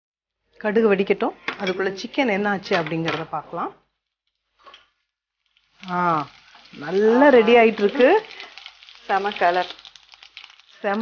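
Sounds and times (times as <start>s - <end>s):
gravy sizzling in a frying pan: 5.2s - 11.0s
woman speaking: 5.8s - 8.3s.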